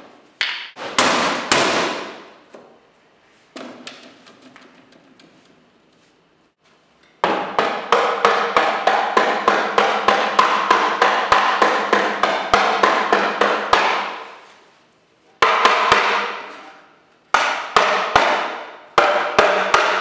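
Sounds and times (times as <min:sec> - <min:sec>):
rubber mallet hammering on wood: 0:00.4 - 0:02.3, 0:07.2 - 0:14.3, 0:15.4 - 0:16.4, 0:17.3 - 0:20.0.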